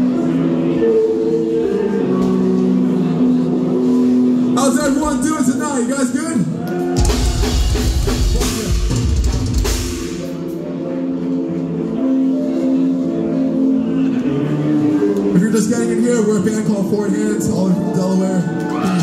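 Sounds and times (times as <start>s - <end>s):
full band with drums: 4.5s - 10.6s.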